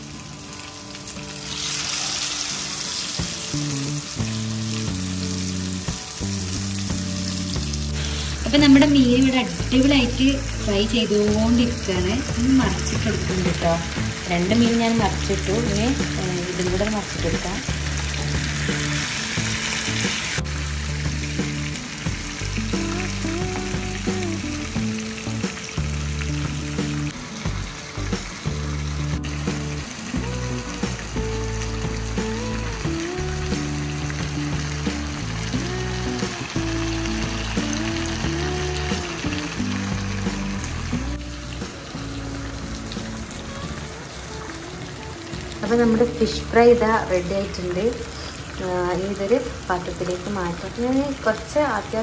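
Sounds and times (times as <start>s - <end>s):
fish sizzling in oil: 0.0s - 52.0s
background music with bass line: 1.3s - 44.0s.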